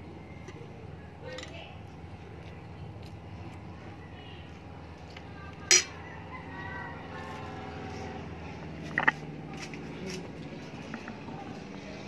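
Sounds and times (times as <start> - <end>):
low mechanical hum: 0.0 - 12.0
metal utensil clicking on plate: 5.7 - 6.0.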